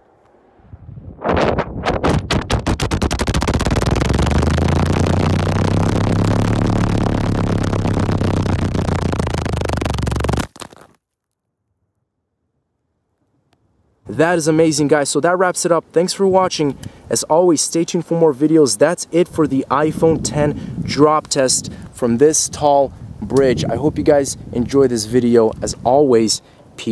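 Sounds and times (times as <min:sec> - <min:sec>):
wind roaring over microphone: 0:00.0 - 0:10.0, 0:19.2 - 0:26.4.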